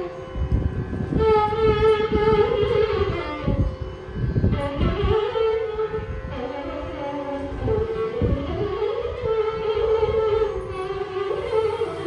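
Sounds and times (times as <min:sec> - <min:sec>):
violin accompaniment: 0:00.0 - 0:12.0.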